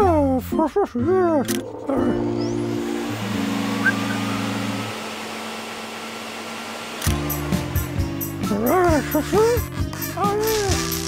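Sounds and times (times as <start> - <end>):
music with long held notes: 1.4 - 5.4, 7.1 - 11.0
vacuum cleaner running: 1.6 - 9.9.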